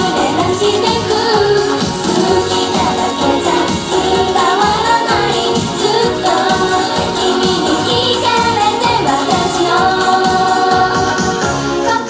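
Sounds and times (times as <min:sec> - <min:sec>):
backing music with steady beat: 0:00.0 - 0:12.0
women singing pop song: 0:00.0 - 0:12.0.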